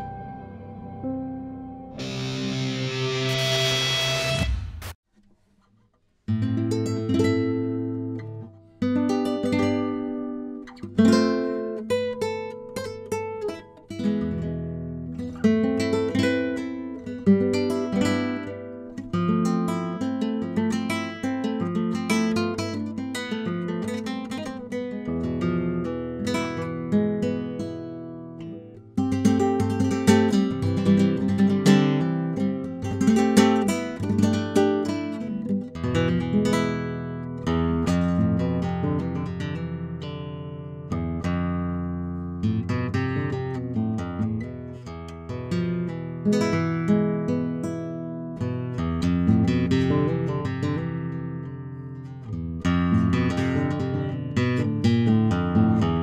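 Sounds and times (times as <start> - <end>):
classical guitar fingerpicking: 5.9 - 56.0.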